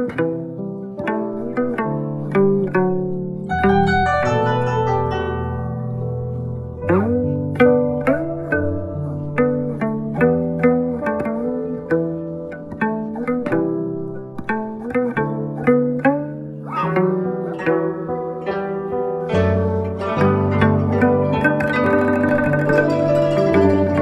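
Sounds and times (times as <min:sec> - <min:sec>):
plucked zither melody: 0:00.0 - 0:24.0.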